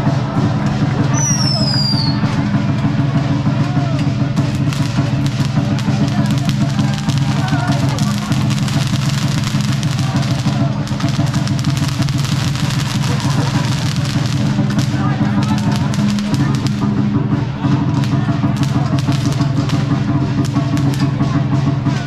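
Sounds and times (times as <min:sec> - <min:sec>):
crowd chatter: 0:00.0 - 0:22.0
drums played fast: 0:00.0 - 0:22.0
clattering percussion hits: 0:02.2 - 0:22.0.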